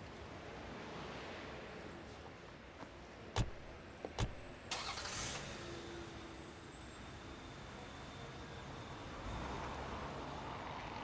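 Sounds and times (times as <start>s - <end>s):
car doors shutting: 3.4s - 4.5s
car engine starting and idling: 4.2s - 5.7s.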